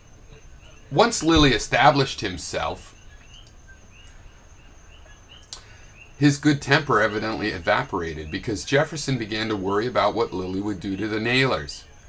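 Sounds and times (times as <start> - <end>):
faint background hum: 0.0 - 12.0.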